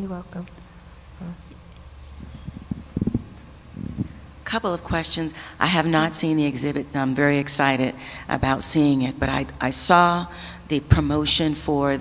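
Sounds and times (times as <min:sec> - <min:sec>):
steady low hum: 0:00.0 - 0:12.0
microphone handling thumps: 0:01.4 - 0:04.4.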